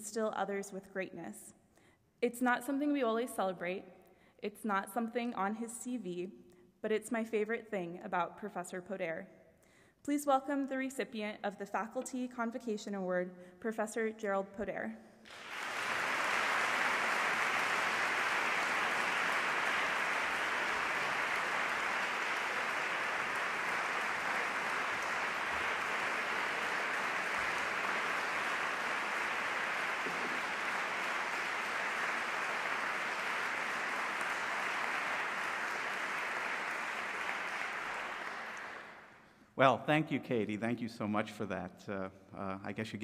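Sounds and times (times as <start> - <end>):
audience applauding: 15.3 - 39.2.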